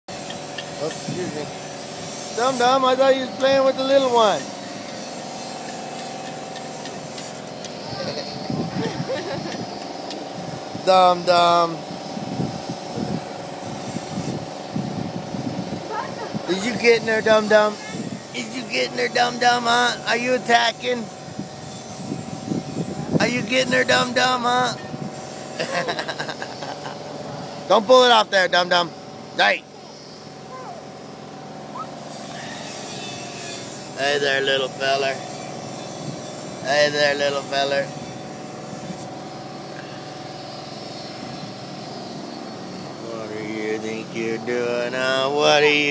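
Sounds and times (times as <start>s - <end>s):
engine-like hum: 0.1s - 45.9s.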